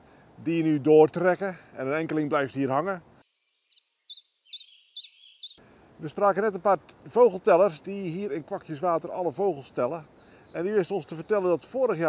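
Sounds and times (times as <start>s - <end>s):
songbird singing high notes: 3.2s - 5.6s.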